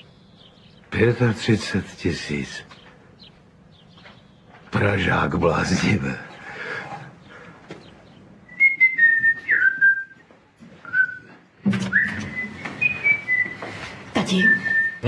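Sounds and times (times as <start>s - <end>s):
person whistling a tune: 8.5s - 10.2s, 10.8s - 13.7s, 14.3s - 15.0s.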